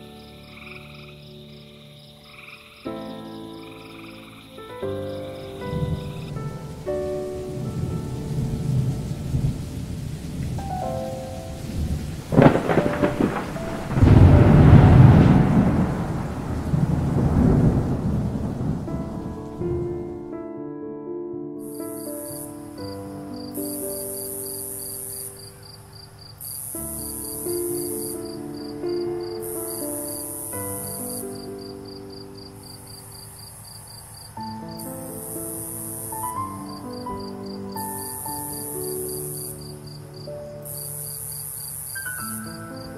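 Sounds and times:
high insect hiss: 0.0s - 19.7s, 21.6s - 42.9s
cricket chirping: 0.0s - 20.0s, 21.6s - 42.9s
rain falling: 0.0s - 20.3s, 21.7s - 42.9s
low thunder rumbling: 5.4s - 20.3s
thunder crack: 5.7s - 20.2s.

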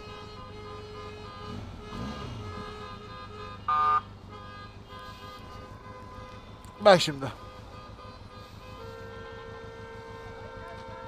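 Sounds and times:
traffic hum: 0.0s - 11.0s
vehicle horn toot: 0.0s - 11.0s.

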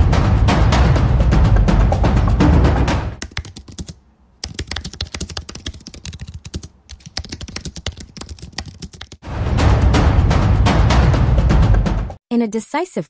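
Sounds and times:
keyboard typing: 3.2s - 9.2s.

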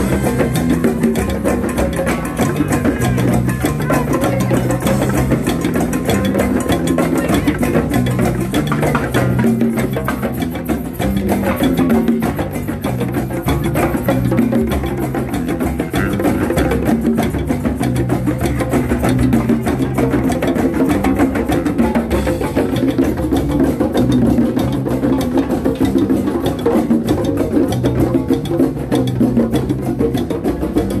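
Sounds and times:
hand drums playing: 0.0s - 31.0s.

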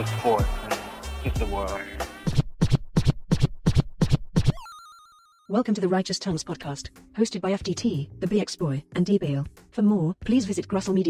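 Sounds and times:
turntable scratching: 2.2s - 4.5s.

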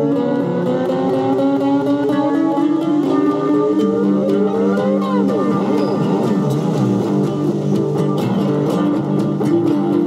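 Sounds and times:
cigar box guitars: 0.0s - 10.0s
drums: 0.0s - 10.0s.

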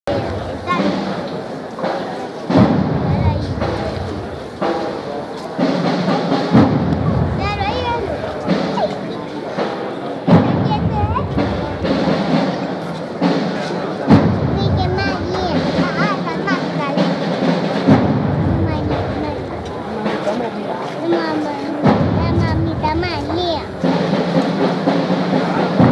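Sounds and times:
crowd voices: 0.0s - 25.9s
band playing slow march: 0.1s - 25.9s
deep drum beats: 0.1s - 25.9s.

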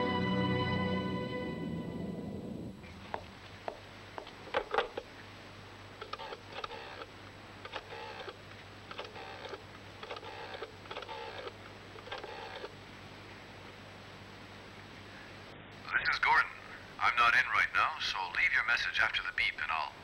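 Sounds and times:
faint steady hum: 0.0s - 20.0s
rotary telephone dial clicking: 6.0s - 12.8s.

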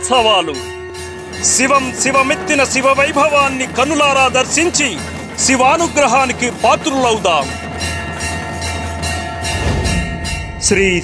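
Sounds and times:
light percussive beat: 0.0s - 11.0s.

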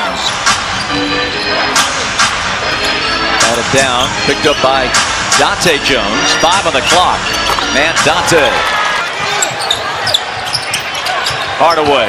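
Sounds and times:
shoe squeaks: 0.0s - 1.6s, 6.3s - 7.8s, 9.2s - 12.0s
arena crowd noise: 0.0s - 12.0s.

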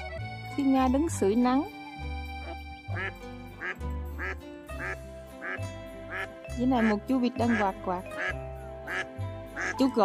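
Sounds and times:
background music with beat: 0.0s - 9.9s
duck quacking: 2.4s - 9.8s.

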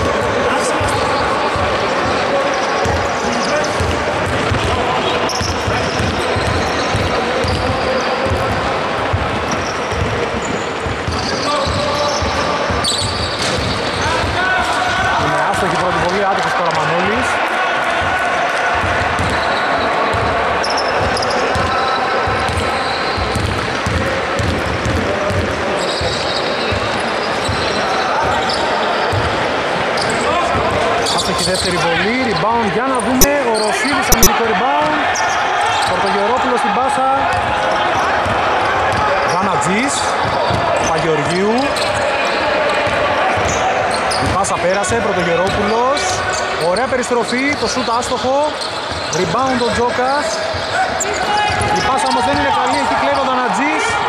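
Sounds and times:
players' voices: 0.0s - 54.0s
basketball bouncing on wooden floor: 3.7s - 14.4s, 18.8s - 19.4s, 20.1s - 27.7s.

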